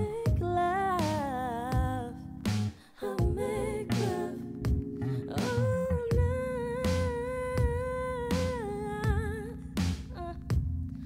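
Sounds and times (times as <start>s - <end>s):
bass line and drum hits: 0.0s - 11.0s.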